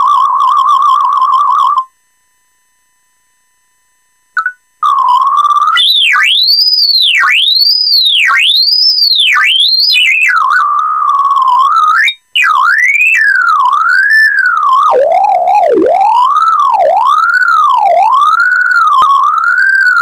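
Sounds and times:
synthesizer tone gliding in pitch: 0:09.3 - 0:20.0.

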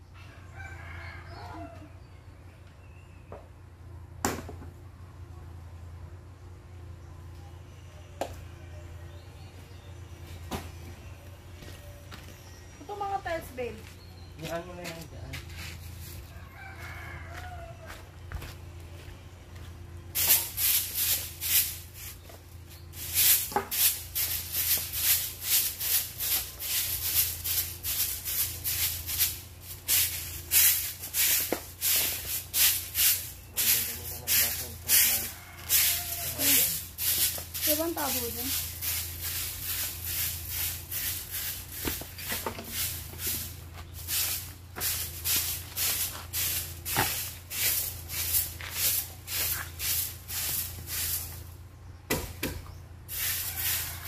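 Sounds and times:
broom sweeping concrete: 0:14.4 - 0:17.9, 0:19.6 - 0:51.6, 0:53.1 - 0:54.0.

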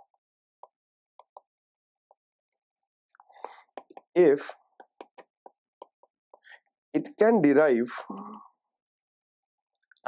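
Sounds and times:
pen tapping while writing: 0:01.2 - 0:01.5, 0:03.5 - 0:04.2, 0:04.8 - 0:06.5.

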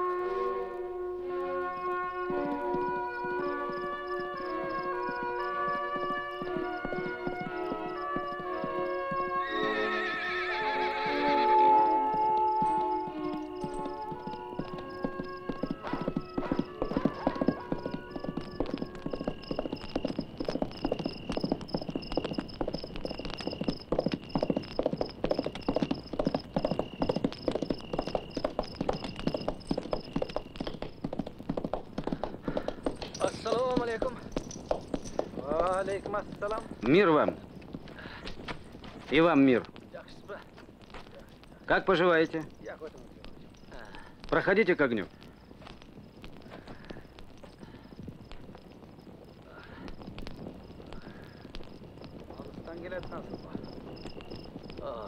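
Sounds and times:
film score music: 0:00.0 - 0:19.0
horse hooves clip-clopping: 0:01.3 - 0:55.0
horse whinnying: 0:09.4 - 0:12.4.

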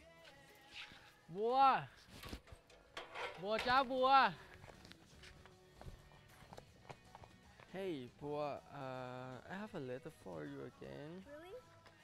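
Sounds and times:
quiet background music: 0:00.0 - 0:12.0
footsteps on tiled steps: 0:04.4 - 0:07.8.

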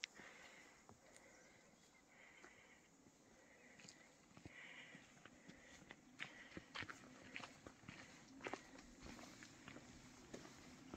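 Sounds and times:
footsteps on rocky dirt trail: 0:02.4 - 0:10.9.

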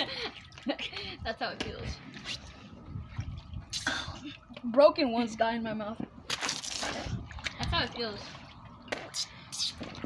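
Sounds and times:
water dripping and sloshing: 0:00.0 - 0:10.0.

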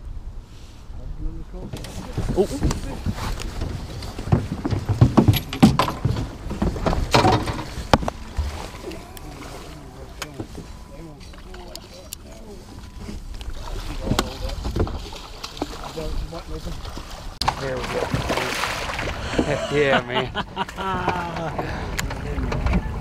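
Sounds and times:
knocks and thumps: 0:01.6 - 0:08.6
fish thrashing and splashing: 0:03.1 - 0:10.4, 0:13.3 - 0:19.8.

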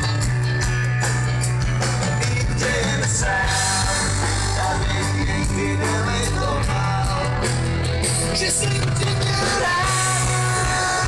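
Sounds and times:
live rock band playing: 0:00.0 - 0:11.0
person singing: 0:08.2 - 0:11.0.

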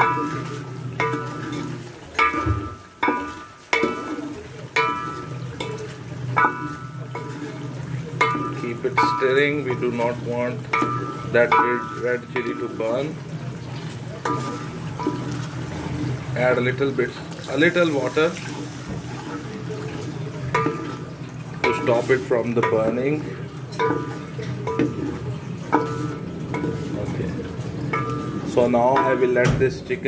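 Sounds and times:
chicken sizzling in a pot: 0:00.0 - 0:30.0
wooden spoon stirring: 0:00.0 - 0:30.0.

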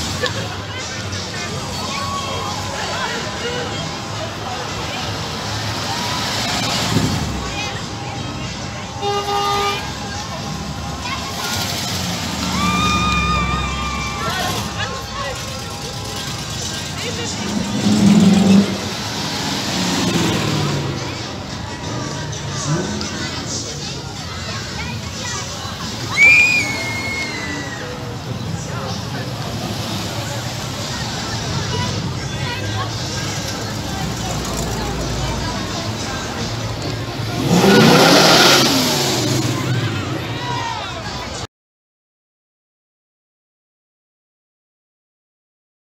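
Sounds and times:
cars driving slowly past: 0:00.0 - 0:41.5
crowd chatter: 0:00.0 - 0:41.5
car horn: 0:08.9 - 0:10.1
vee eight engine approaching: 0:09.7 - 0:26.0.

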